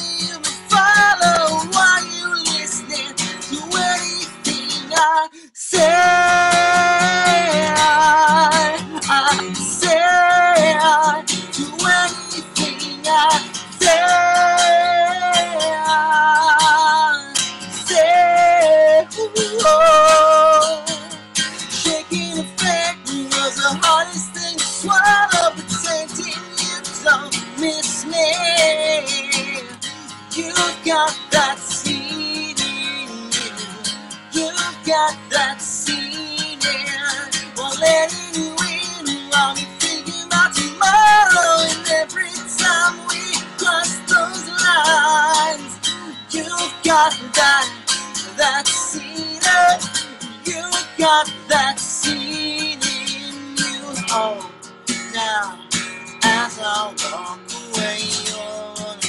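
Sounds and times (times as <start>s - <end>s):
man singing: 0.0s - 59.0s
strummed acoustic guitar: 0.0s - 59.0s.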